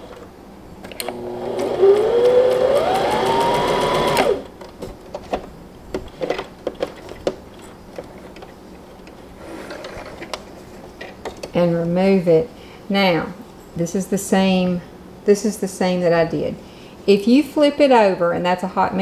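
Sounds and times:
sewing machine motor whine: 0:01.0 - 0:04.5.

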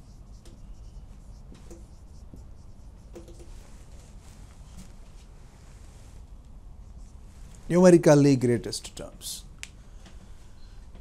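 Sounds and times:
marker pen writing on whiteboard: 0:00.0 - 0:04.2.

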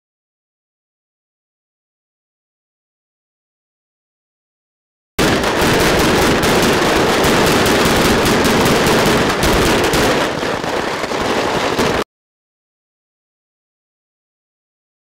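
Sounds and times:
pyrotechnic bullet hits popping: 0:05.2 - 0:11.2.

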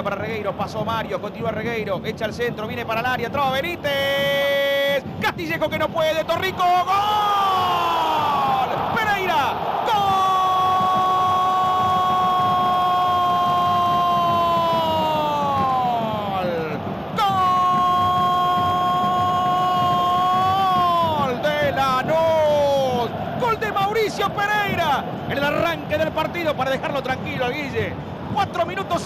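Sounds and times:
stadium crowd noise: 0:00.0 - 0:29.0
commentator's long held goal cry: 0:06.1 - 0:26.7.

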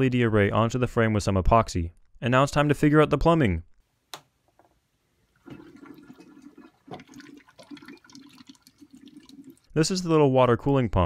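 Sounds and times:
water gurgling through tubing: 0:05.4 - 0:09.7.

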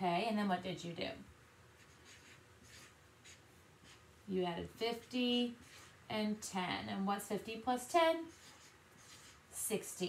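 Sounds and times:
marker scratching on paper: 0:01.8 - 0:04.1, 0:04.8 - 0:06.0, 0:08.2 - 0:09.9.

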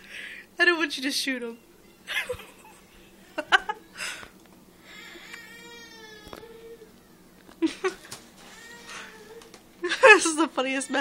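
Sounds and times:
woman laughing with full mouth: 0:02.1 - 0:04.2, 0:07.6 - 0:08.2.

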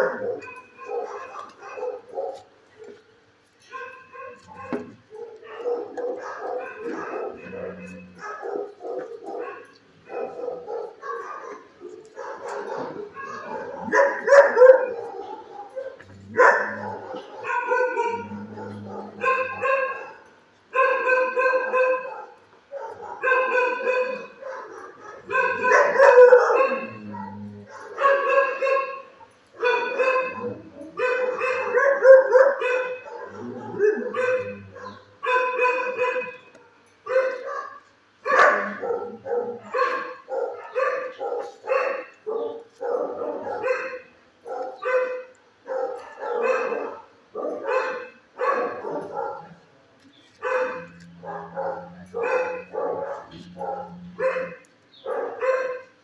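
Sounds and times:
dog barking: 0:00.0 - 0:03.0, 0:03.7 - 0:49.7, 0:50.3 - 0:56.0.

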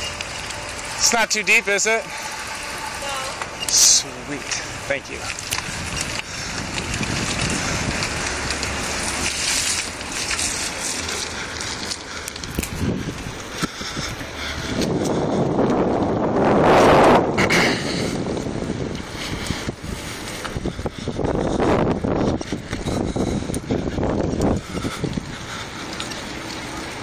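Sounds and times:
wind buffeting microphone: 0:02.2 - 0:27.0.

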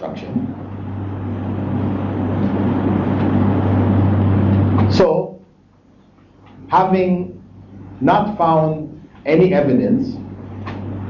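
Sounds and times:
loud steady rumble with hum: 0:00.0 - 0:05.2, 0:06.5 - 0:11.0.

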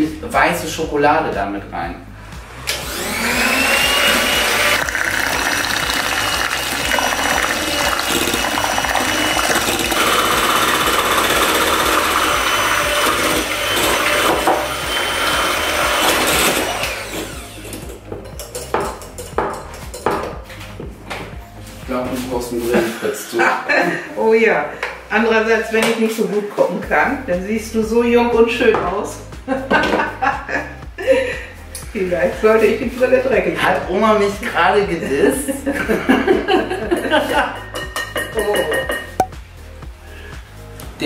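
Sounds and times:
electric hand mixer whining: 0:02.4 - 0:18.3.

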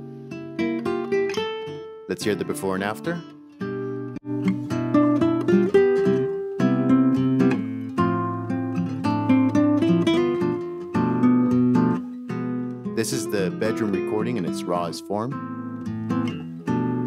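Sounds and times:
acoustic guitars playing: 0:00.0 - 0:17.0.

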